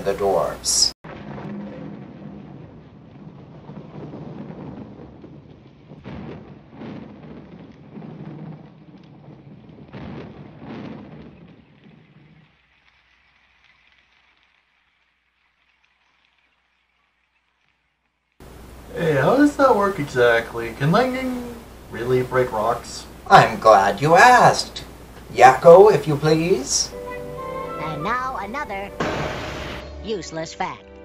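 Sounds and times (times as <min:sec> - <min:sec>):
rain: 0:00.0 - 0:29.8
sharp thunder cracks: 0:01.0 - 0:12.5, 0:18.4 - 0:30.0
rumbling thunder: 0:01.0 - 0:12.8, 0:18.4 - 0:29.9.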